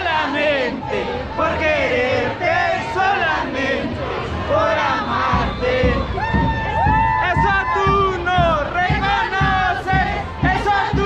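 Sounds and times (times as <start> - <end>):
crowd shouting and singing: 0.0 - 11.0
low thumping beats: 3.9 - 11.0.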